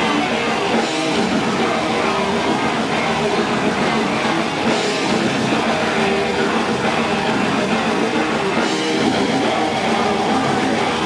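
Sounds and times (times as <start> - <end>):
metal band playing live: 0.0 - 11.0.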